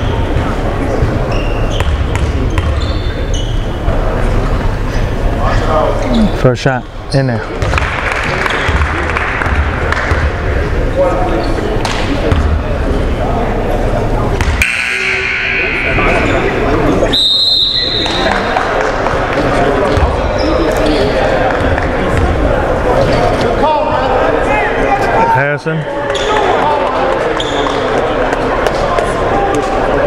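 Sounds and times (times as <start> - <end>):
crowd talking in echoing hall: 0.0 - 30.0.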